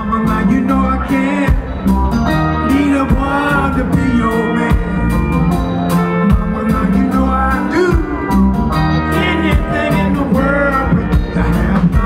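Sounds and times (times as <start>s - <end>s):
low bass line: 0.0s - 12.0s
man singing: 0.0s - 12.0s.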